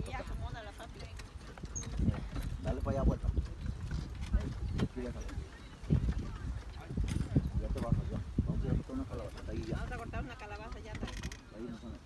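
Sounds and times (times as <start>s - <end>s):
background voices talking: 0.0s - 12.0s.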